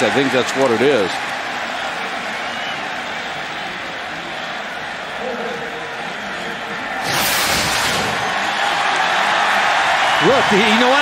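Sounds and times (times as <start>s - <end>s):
stadium crowd hubbub: 0.0s - 11.0s
broadcast whoosh: 7.0s - 8.6s.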